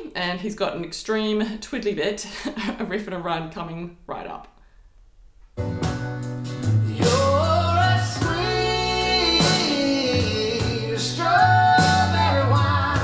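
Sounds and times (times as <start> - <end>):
slow band backing: 5.6 - 13.0
man singing vocal runs: 6.9 - 13.0.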